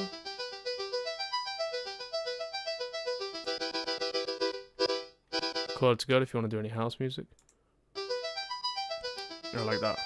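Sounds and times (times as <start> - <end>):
synthesizer arpeggio notes: 0.0 - 5.8, 8.0 - 10.0
synthesizer repeating chords: 0.0 - 5.8, 8.0 - 10.0.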